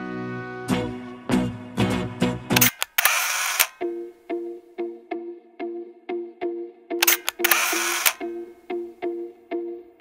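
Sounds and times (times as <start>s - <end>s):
short clicky notes: 7.0s - 8.3s.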